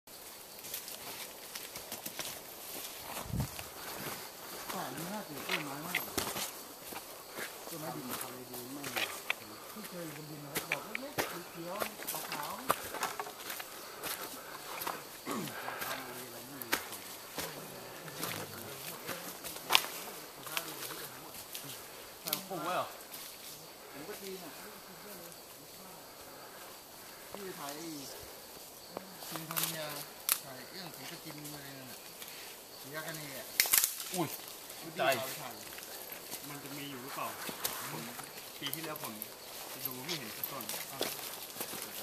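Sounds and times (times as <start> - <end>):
insect buzz: 0.1 - 42.0
footsteps on dry leaf litter: 0.6 - 21.6, 34.1 - 42.0
quiet talking: 3.7 - 42.0.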